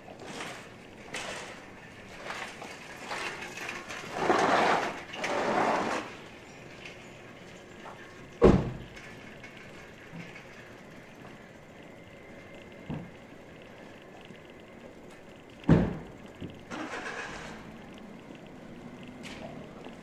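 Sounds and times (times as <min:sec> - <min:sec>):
quiet street background: 0:00.0 - 0:20.0.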